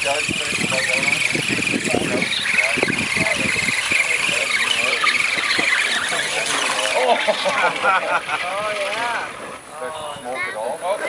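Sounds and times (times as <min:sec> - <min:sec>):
electric motor and gears whining: 0:00.0 - 0:11.0
wheels churning through mud: 0:00.0 - 0:11.0.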